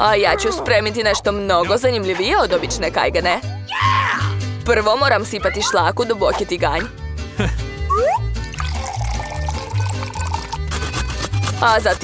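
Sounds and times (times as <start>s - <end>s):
milk pouring into metal pot: 8.4s - 11.1s.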